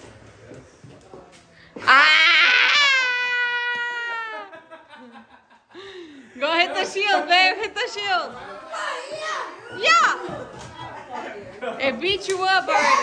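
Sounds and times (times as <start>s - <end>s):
people laughing and shrieking: 1.8s - 4.6s.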